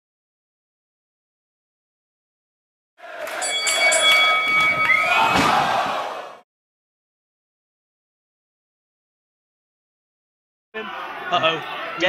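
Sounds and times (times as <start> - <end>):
arena crowd noise: 3.0 - 6.4, 10.8 - 12.0
wrestlers thudding on ring canvas: 4.5 - 6.2.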